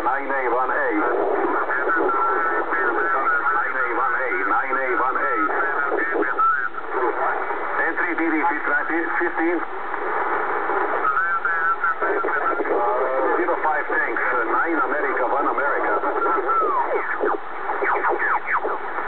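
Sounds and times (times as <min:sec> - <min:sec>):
radio voice through speaker: 0:00.0 - 0:19.0
steady background hiss: 0:00.0 - 0:19.0.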